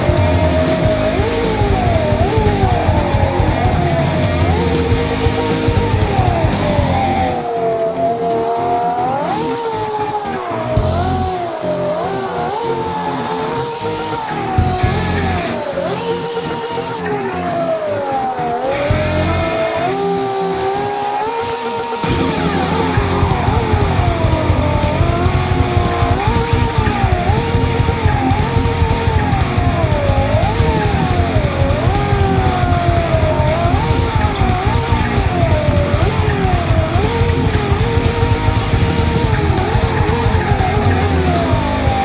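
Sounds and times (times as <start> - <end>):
car tyre squeal: 0.0 - 42.0
rock music: 0.0 - 42.0.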